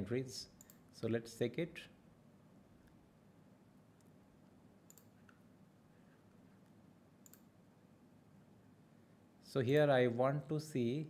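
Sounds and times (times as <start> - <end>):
computer mouse clicks: 0.6 - 0.8, 4.9 - 5.4, 6.6 - 7.5.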